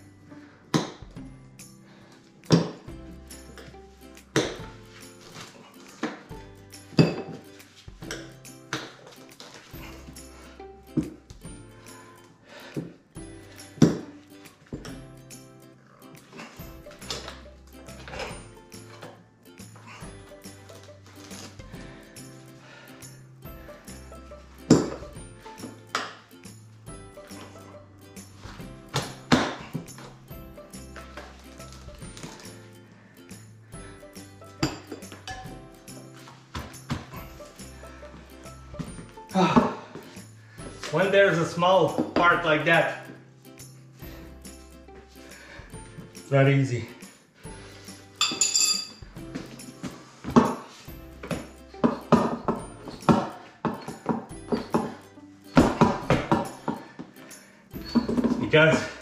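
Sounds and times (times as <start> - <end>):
background music: 0.0 - 59.0.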